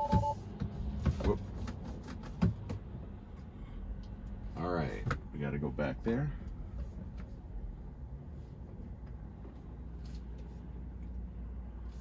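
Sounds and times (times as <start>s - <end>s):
two-tone chime: 0.0s - 0.4s.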